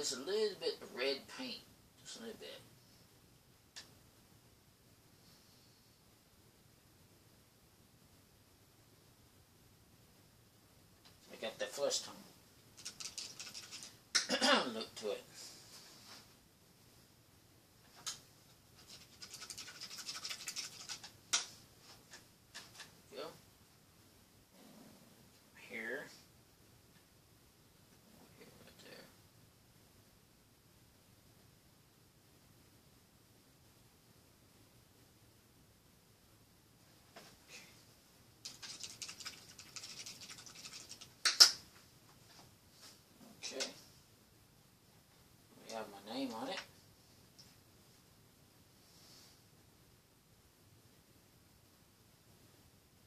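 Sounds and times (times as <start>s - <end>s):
scratchy rubbing strokes: 12.8s - 14.0s, 18.7s - 22.9s, 38.4s - 41.5s
rapid small clicks: 12.8s - 14.3s, 18.8s - 21.5s, 38.4s - 41.6s.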